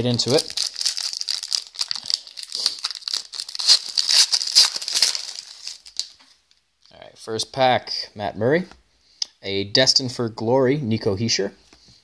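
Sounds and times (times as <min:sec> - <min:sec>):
foil wrapper crinkling: 0:00.0 - 0:06.6.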